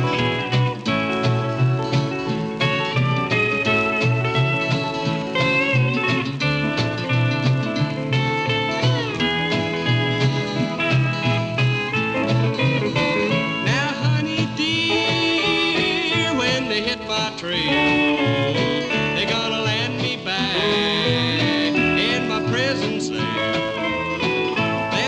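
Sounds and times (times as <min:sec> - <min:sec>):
rhythm guitar: 0:00.0 - 0:25.0
sliding lead melody: 0:00.0 - 0:25.0
upright bass: 0:00.0 - 0:25.0.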